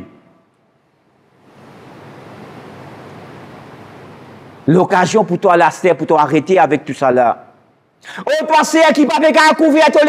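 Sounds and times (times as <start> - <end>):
steady hiss: 0.0 - 9.4.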